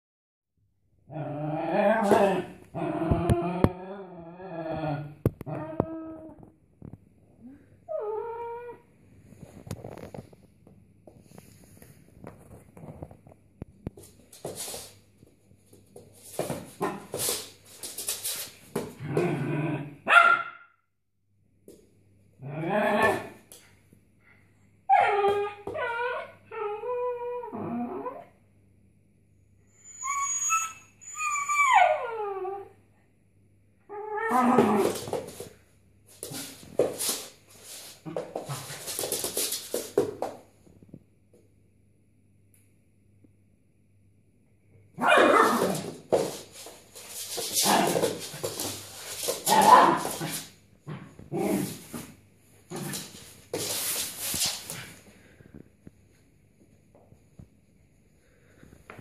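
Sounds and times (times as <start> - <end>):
dog whining and howling: 5.5 - 6.4, 7.9 - 8.8, 24.9 - 28.3, 29.8 - 32.8, 33.9 - 35.0
dog barking: 20.1 - 20.7.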